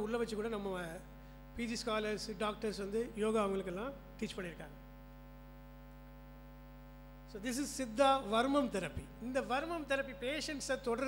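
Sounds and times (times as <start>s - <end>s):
electrical mains hum: 0.0s - 11.0s
man speaking: 7.3s - 11.0s.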